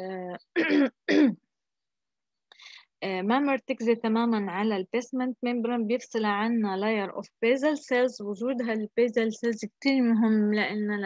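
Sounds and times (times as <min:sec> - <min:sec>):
woman clearing her throat: 0:00.6 - 0:01.5.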